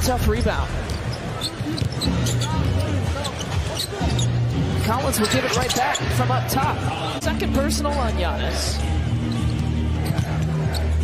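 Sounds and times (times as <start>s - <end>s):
crowd background: 0.0s - 11.0s
arena music: 1.6s - 11.0s.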